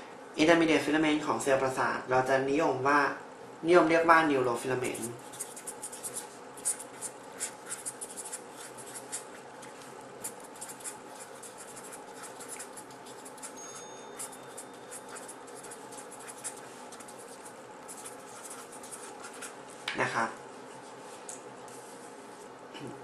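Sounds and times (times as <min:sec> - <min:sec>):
faint steady hum: 0:00.0 - 0:23.0
pen scratching on paper: 0:05.2 - 0:19.6.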